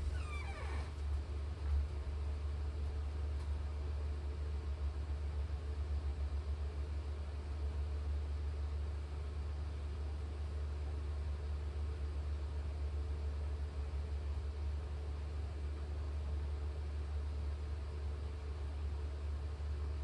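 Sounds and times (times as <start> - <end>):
brief falling squeak: 0.0 - 0.9
steady low hum: 0.0 - 7.0.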